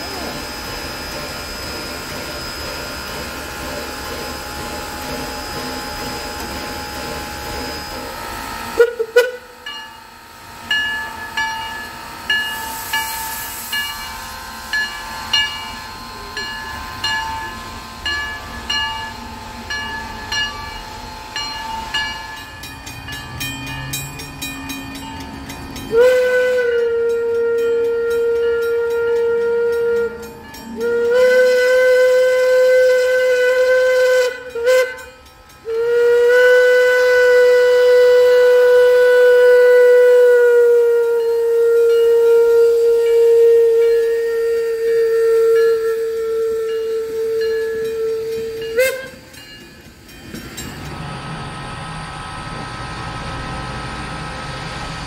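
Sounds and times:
locomotive bell ringing: 0.1s - 36.4s, 37.0s - 52.8s
steam whistle blasts: 7.8s - 9.7s, 25.9s - 49.3s.

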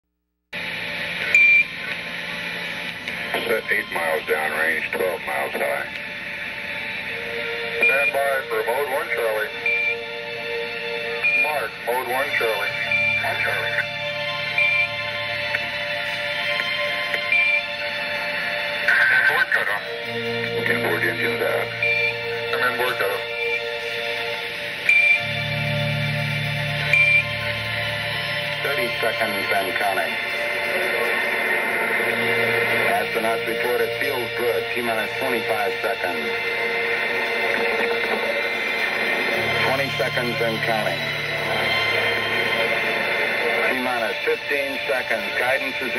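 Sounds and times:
radio hiss: 0.6s - 9.8s, 11.2s - 45.9s
synthesizer chords: 2.1s - 45.9s
low bass drone: 6.1s - 45.9s.

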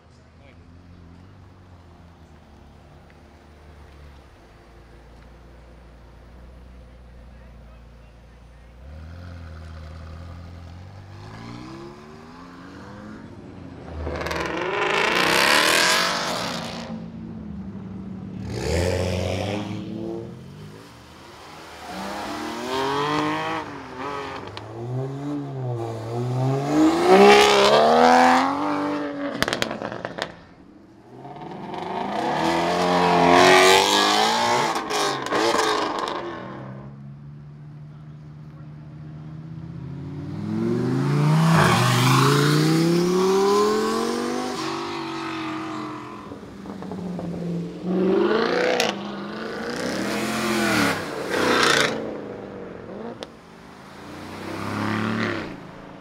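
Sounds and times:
sports cars accelerating hard: 6.3s - 56.0s.

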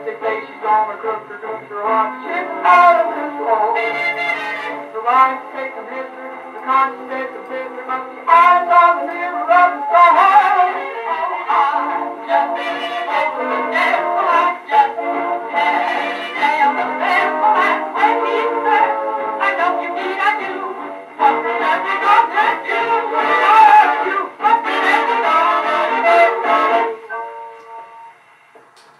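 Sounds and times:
dance orchestra on old phonograph: 0.0s - 28.9s.

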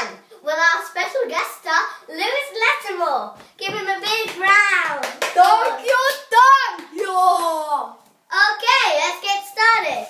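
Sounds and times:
young girl talking: 0.0s - 10.0s.

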